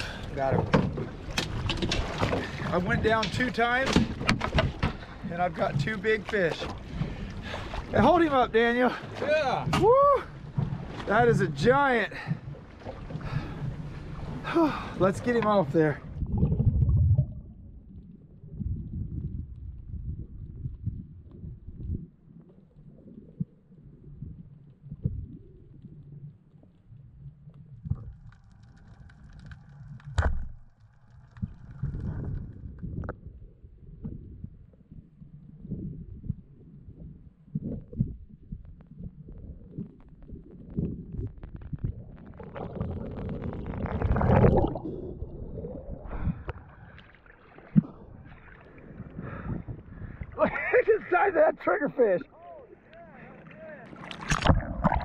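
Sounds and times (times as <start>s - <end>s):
underwater rumble of moving water: 0.0s - 55.0s.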